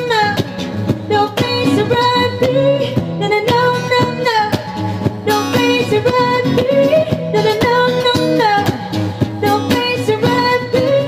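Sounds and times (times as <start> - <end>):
cajon beat: 0.0 - 11.0.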